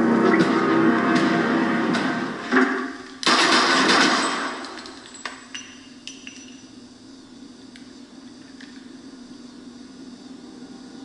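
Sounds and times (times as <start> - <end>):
pistol shot in tiled room: 2.5 - 5.5
droning sound: 9.4 - 11.0.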